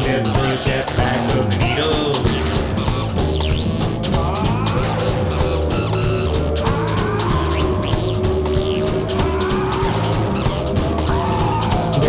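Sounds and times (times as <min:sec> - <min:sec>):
bass line: 0:00.0 - 0:12.0
drum beat: 0:00.0 - 0:12.0
sliding guitar notes: 0:00.2 - 0:12.0.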